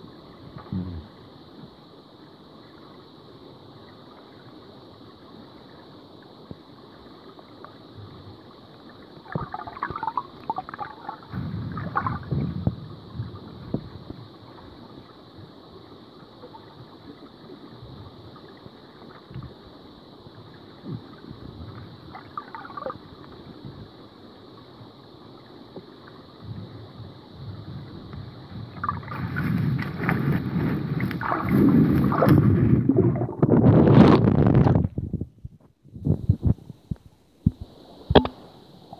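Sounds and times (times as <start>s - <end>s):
steady high hiss: 0.0s - 33.4s, 34.9s - 38.9s
muffled underwater sloshing: 0.0s - 38.9s.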